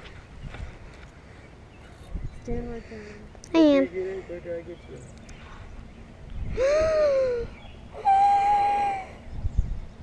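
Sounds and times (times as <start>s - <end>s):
wordless vocal cries: 8.0s - 9.2s.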